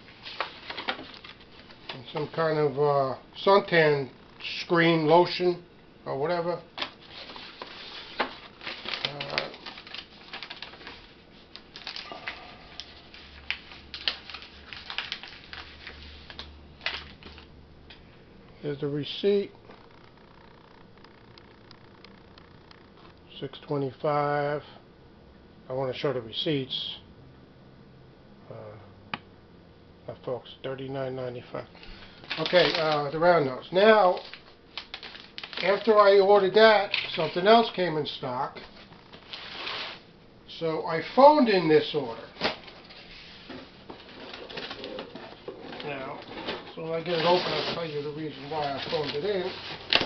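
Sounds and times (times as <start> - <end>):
crinkling: 0.0 - 2.4, 6.4 - 18.0, 32.1 - 37.8, 41.4 - 50.0.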